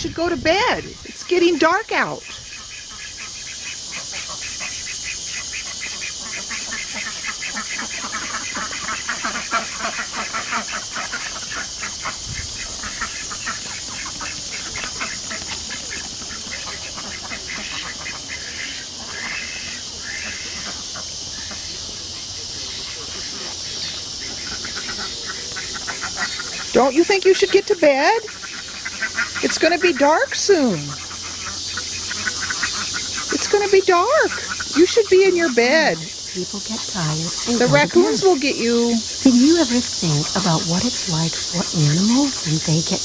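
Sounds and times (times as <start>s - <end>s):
ducks calling: 0.0s - 43.0s
ducks shuffling: 0.0s - 43.0s
high-pitched hiss: 0.0s - 43.0s.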